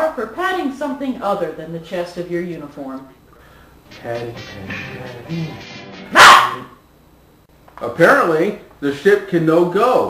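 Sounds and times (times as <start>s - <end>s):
soft music: 3.9s - 6.2s
loud short bark-like cry: 6.1s - 6.8s.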